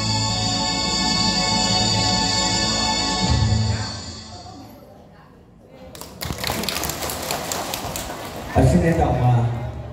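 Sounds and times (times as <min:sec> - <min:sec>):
audience applause: 0:06.0 - 0:08.9.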